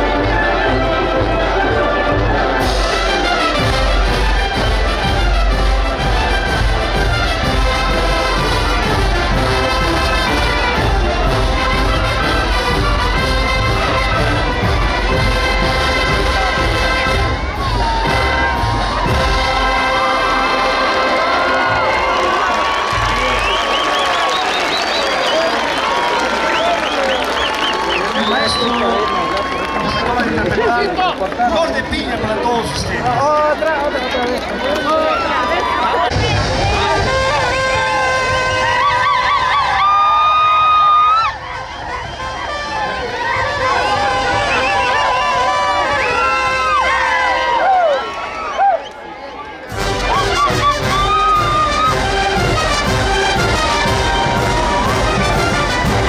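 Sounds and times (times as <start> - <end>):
brass band playing dance tune: 0.0 - 31.9, 34.5 - 48.5, 49.5 - 56.0
crowd cheering and shouting: 0.0 - 56.0.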